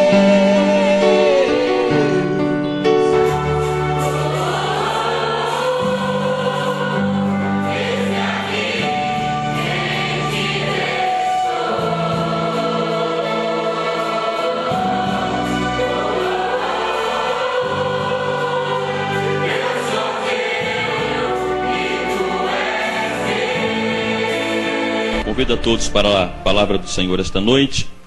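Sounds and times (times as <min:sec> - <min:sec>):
group singing slow song: 0:00.0 - 0:25.8
low musical accompaniment: 0:00.0 - 0:28.0.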